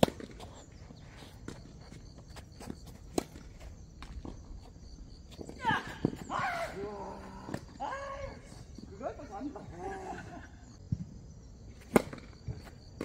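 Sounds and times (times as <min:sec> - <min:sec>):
racket hitting tennis ball: 0:00.0 - 0:00.6, 0:11.9 - 0:12.3.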